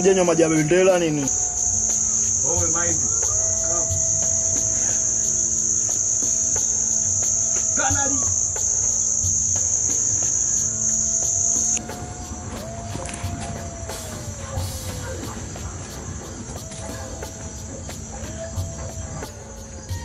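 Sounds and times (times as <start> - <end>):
crickets trilling: 0.0 - 20.0.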